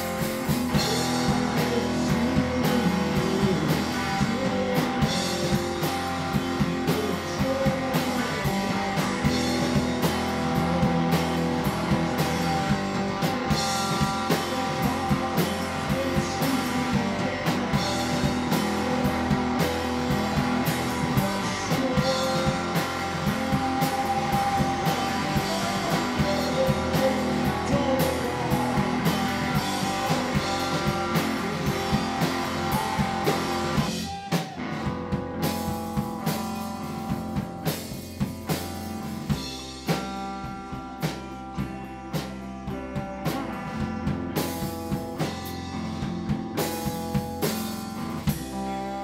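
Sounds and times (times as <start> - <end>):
drum kit with cymbals: 0.0 - 49.0
electric guitars: 0.0 - 49.0.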